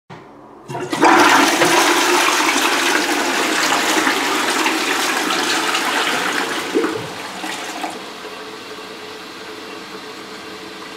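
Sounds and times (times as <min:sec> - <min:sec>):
toilet flushing: 0:00.6 - 0:10.9.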